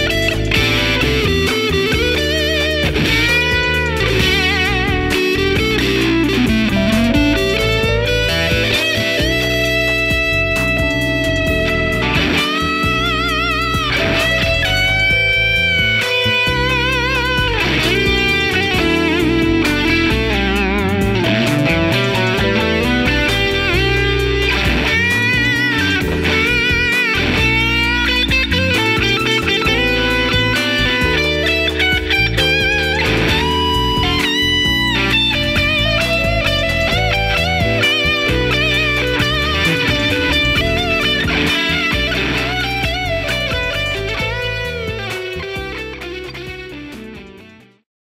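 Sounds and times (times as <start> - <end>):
electric guitar lead with fuzz: 0.0 - 47.8.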